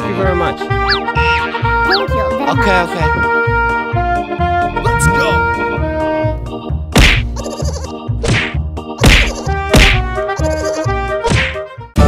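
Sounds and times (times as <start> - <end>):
background music: 0.0 - 12.0
cartoon whack effects: 6.9 - 7.5, 8.2 - 10.1.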